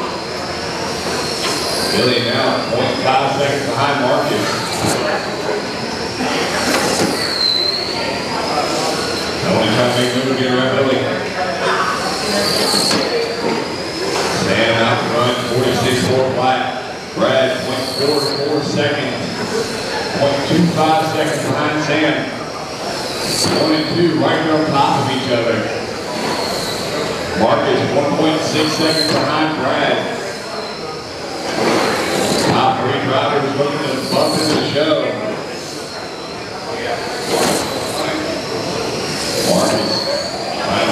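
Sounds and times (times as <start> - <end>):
electric motors whining: 0.0 - 40.9.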